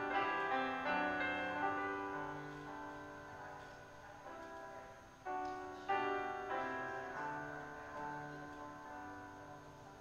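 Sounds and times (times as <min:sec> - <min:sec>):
slow soft piano chords: 0:00.0 - 0:10.0.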